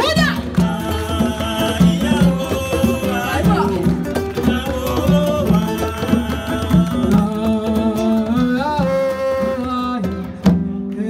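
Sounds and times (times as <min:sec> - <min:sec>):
woman singing: 0:00.0 - 0:09.6
acoustic guitar: 0:00.0 - 0:11.0
drum kit beat: 0:00.0 - 0:11.0.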